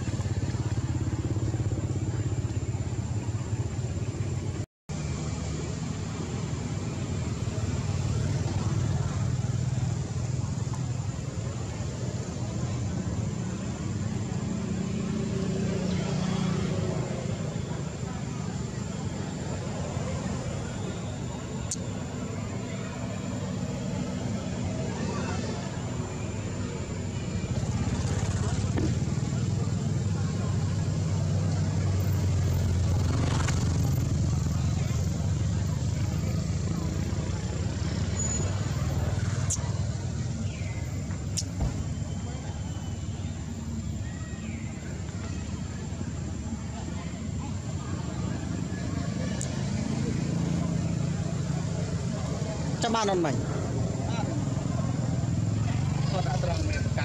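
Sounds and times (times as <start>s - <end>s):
low rumble of motor traffic: 0.0s - 57.0s
faint human voices: 6.7s - 57.0s.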